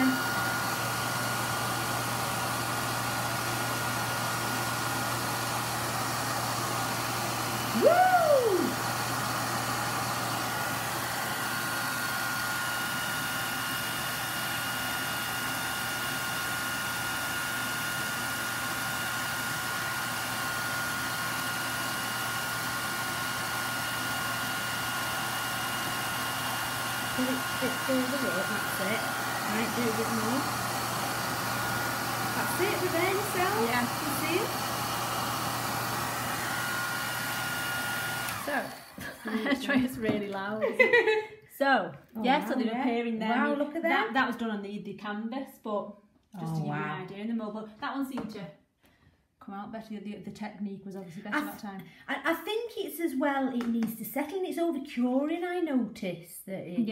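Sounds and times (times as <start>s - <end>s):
hairdryer running: 0.0s - 41.3s.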